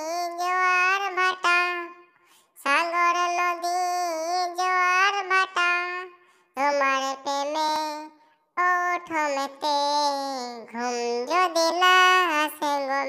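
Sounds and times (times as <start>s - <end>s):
person singing unaccompanied: 0.0s - 13.0s.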